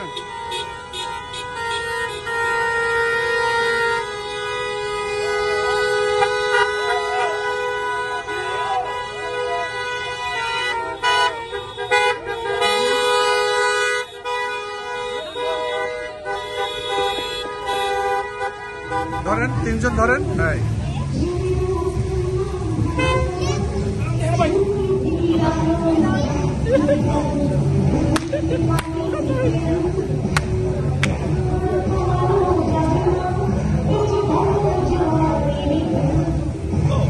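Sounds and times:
car horns blasting: 0.0 - 20.7, 22.8 - 23.4
people shouting: 5.1 - 13.0.

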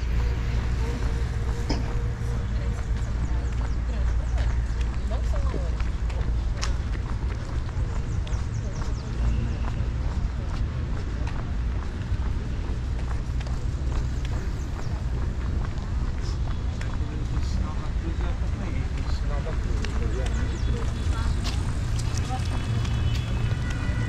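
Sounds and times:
passers-by talking: 0.0 - 24.0.

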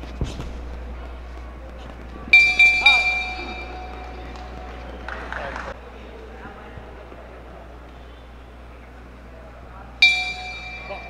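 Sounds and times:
arena crowd noise: 0.0 - 11.0
boxing bell ringing: 2.3 - 4.8, 10.0 - 11.0.

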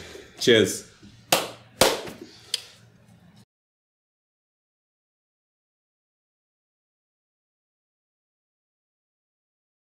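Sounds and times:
sharp hand claps: 1.3 - 2.2.

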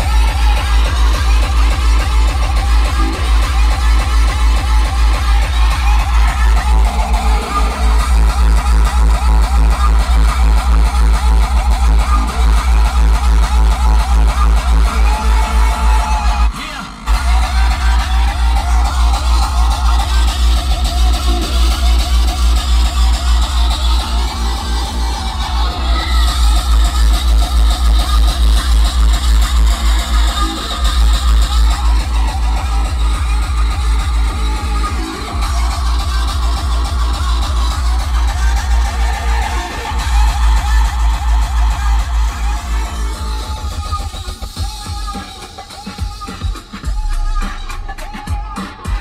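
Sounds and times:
hardcore electronic music: 0.0 - 49.0.

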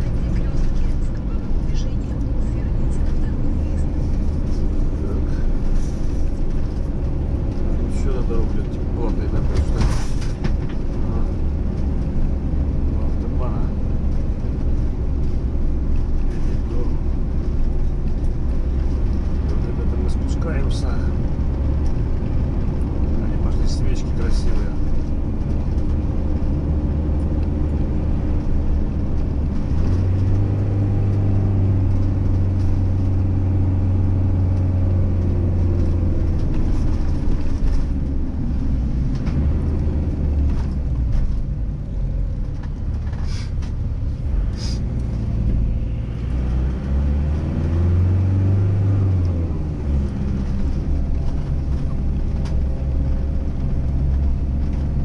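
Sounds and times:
road noise: 0.0 - 55.0
vehicle engine drone: 0.0 - 55.0.

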